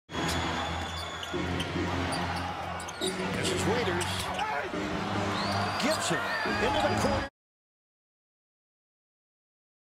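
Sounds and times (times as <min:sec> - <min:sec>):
arena crowd noise: 0:00.1 - 0:07.3
music: 0:00.1 - 0:07.3.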